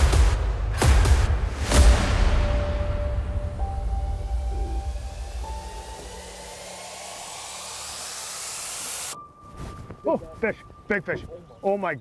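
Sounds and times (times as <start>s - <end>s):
swelling whoosh riser: 1.6s - 9.2s.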